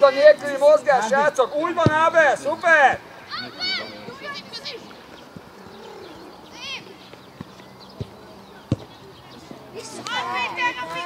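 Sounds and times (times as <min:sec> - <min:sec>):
distant shouts of players: 0:01.3 - 0:05.0, 0:09.7 - 0:11.0
football being kicked: 0:01.8 - 0:02.2, 0:07.4 - 0:09.0.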